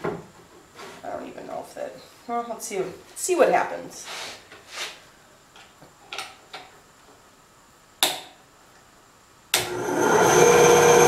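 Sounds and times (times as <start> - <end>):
bandsaw motor starting: 9.6 - 11.0.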